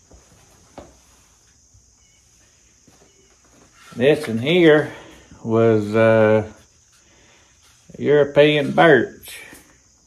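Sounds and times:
thin steady high hiss: 0.0 - 10.0.

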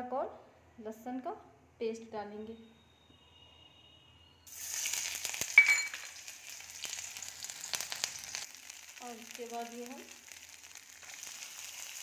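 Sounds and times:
paste sizzling in hot oil: 4.5 - 12.0
sharp metallic clink: 5.6 - 6.1.

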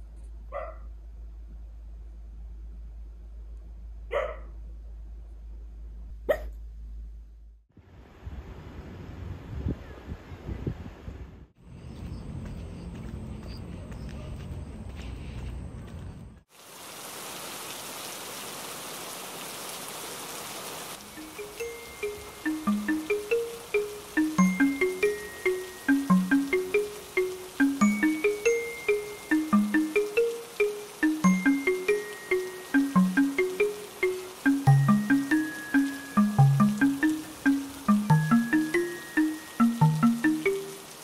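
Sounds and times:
dog barking in sleep: 0.5 - 0.9, 4.1 - 4.6, 6.3 - 6.6
rain falling on paving: 16.5 - 41.0
bell-like mallet music: 21.0 - 40.8.

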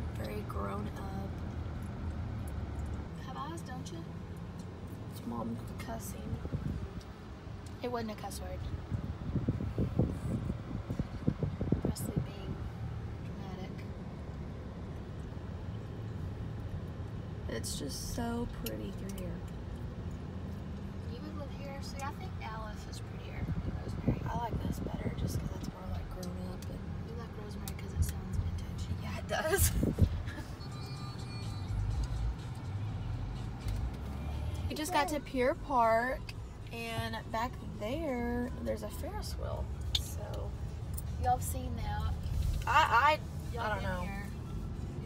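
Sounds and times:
car road and engine hum: 0.0 - 45.0
faint music: 30.6 - 45.0.

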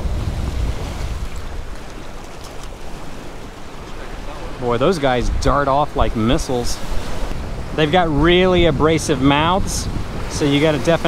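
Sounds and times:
surf washing against rocks: 0.0 - 11.0
wind rumbling on microphone: 0.0 - 11.0.

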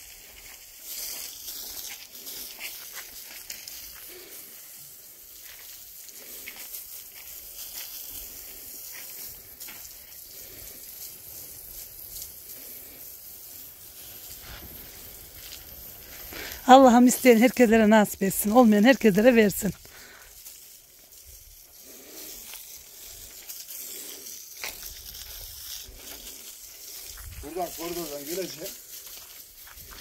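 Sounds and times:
hose water spraying: 0.0 - 30.0
water spattering on blocks: 0.0 - 30.0.

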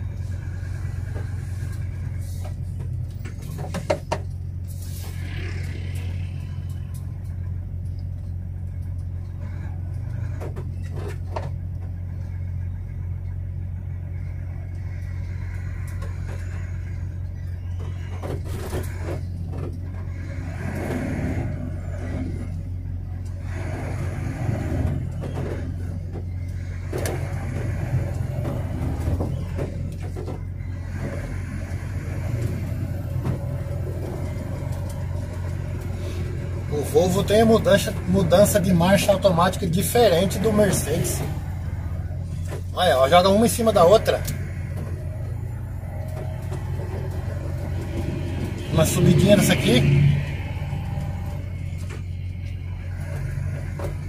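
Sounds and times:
truck engine drone: 0.0 - 54.0
knocks and rattles: 0.8 - 12.2, 23.5 - 42.8.

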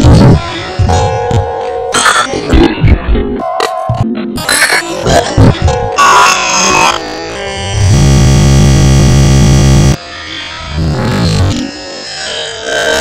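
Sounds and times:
harsh electronic synthesizer music: 0.0 - 13.0
buzzing low synth: 6.4 - 10.0, 10.6 - 11.6.

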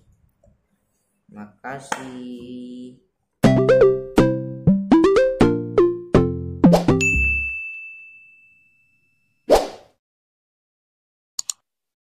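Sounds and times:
high ringing ding: 7.0 - 9.4.

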